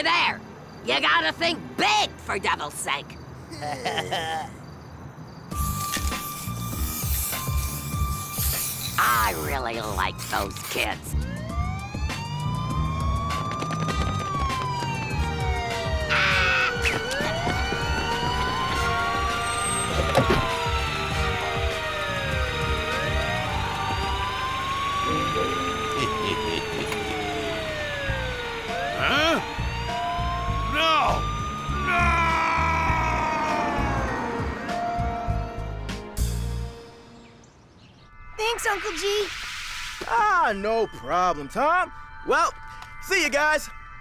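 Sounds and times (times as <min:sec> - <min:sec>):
background music: 0:05.6 - 0:39.2
police siren wailing: 0:09.3 - 0:36.4.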